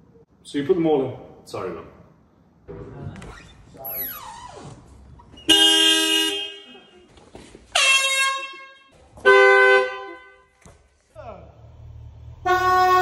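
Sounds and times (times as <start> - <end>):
car horn blasts: 5.5 - 7.1, 7.7 - 10.5, 12.4 - 13.0.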